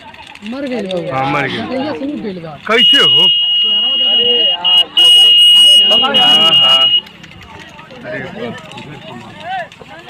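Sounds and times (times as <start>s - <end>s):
faint voices: 0.0s - 10.0s
people shouting: 2.7s - 7.1s
high-pitched electronic alarm buzzer: 2.8s - 7.0s.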